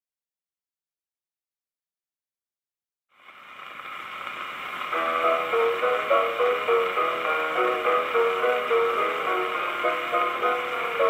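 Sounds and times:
record needle surface hiss: 0:03.1 - 0:11.0
thin old recorded music: 0:03.2 - 0:11.0.

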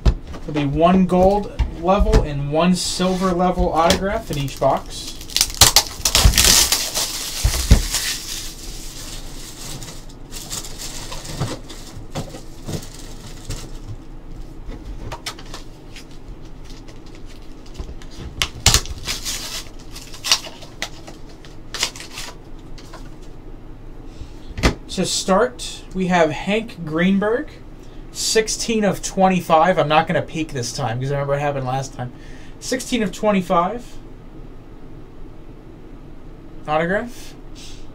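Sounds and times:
plastic wrap tearing: 0:04.1 - 0:13.9, 0:15.2 - 0:23.0.

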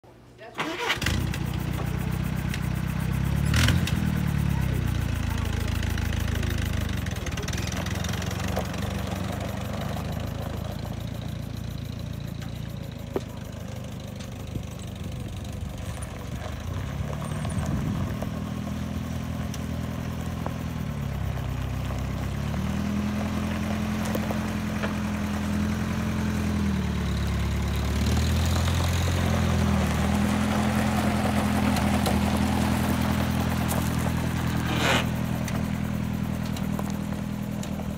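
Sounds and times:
car engine running: 0:00.8 - 0:37.9.

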